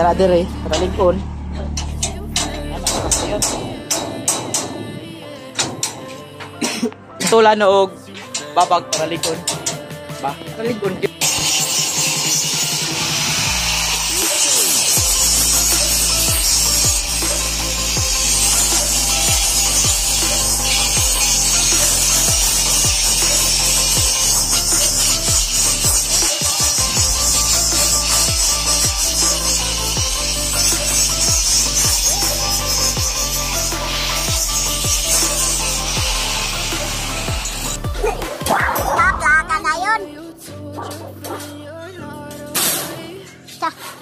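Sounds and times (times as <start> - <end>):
angle grinder on metal: 0.0 - 6.6, 11.0 - 39.5
music with beat and bass: 0.0 - 6.7, 8.3 - 41.8.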